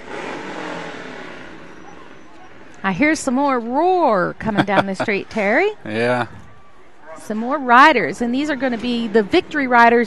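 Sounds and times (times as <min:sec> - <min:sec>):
motorcycles revving: 0:00.0 - 0:06.6, 0:07.2 - 0:10.0.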